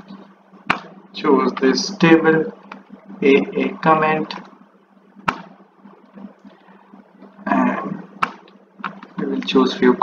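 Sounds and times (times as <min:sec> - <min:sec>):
faint low hum: 0:00.0 - 0:10.0
sharp computer click: 0:00.7 - 0:00.9, 0:05.2 - 0:05.6, 0:08.2 - 0:09.2.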